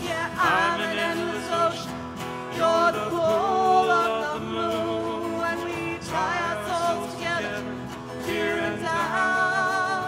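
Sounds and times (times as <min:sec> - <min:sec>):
strummed acoustic guitars: 0:00.0 - 0:10.0.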